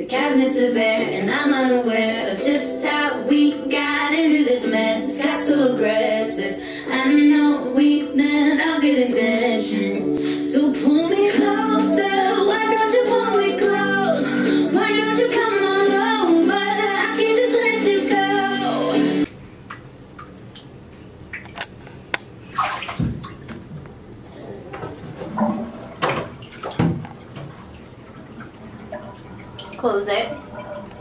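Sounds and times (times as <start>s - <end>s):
pop music with woman singing: 0.0s - 19.3s
water slaps and splashes: 21.3s - 23.8s, 25.3s - 29.0s.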